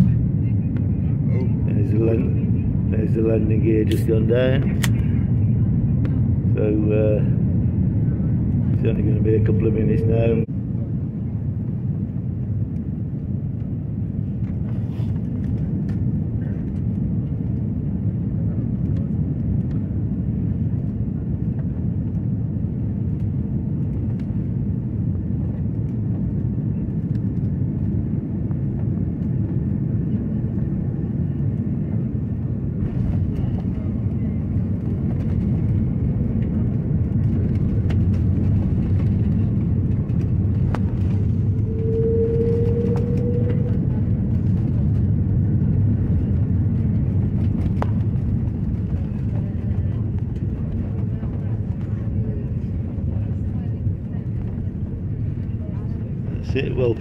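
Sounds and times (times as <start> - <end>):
jet engine rumble in cabin: 0.0 - 57.0
short rising whine: 41.0 - 44.1.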